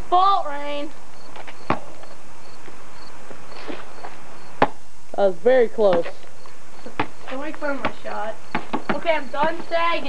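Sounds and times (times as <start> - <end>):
basketball knocking on hoop: 6.9 - 9.7.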